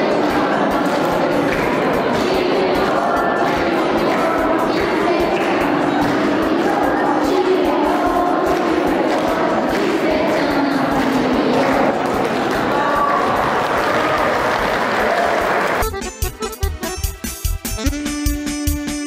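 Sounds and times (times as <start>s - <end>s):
children clapping: 0.0s - 6.8s, 8.2s - 15.8s
children singing: 0.0s - 15.8s.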